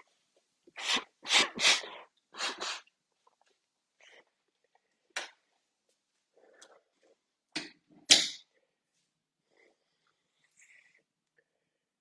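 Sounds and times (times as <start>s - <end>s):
person blowing nose: 0.8s - 2.9s.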